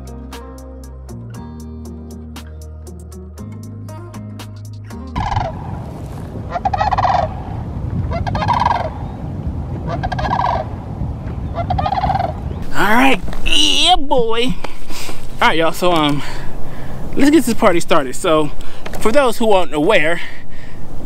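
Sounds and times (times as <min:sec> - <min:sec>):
guitar music: 0:00.0 - 0:06.2
low wind noise: 0:04.9 - 0:21.0
large birds calling: 0:08.1 - 0:10.8.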